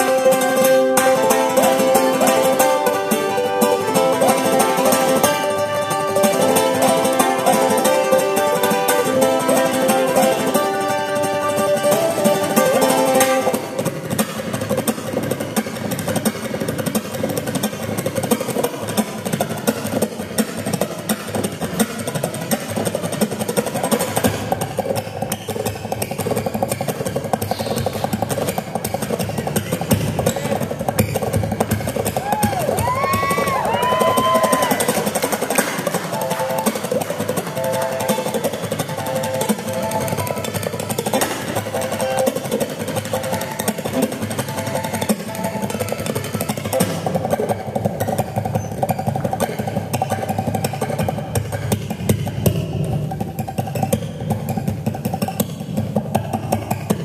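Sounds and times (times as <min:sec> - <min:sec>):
ukulele playing: 0:00.0 - 0:20.1, 0:26.3 - 0:48.4.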